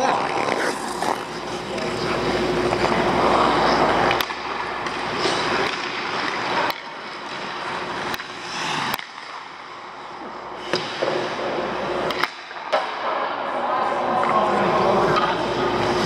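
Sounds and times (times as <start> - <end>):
ice skates scraping on ice: 0.0 - 9.3.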